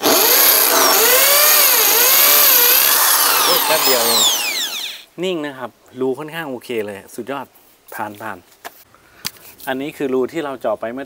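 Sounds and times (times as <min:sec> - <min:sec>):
drill motor winding down: 0:00.0 - 0:05.1
hammer drill boring into masonry: 0:00.0 - 0:05.1.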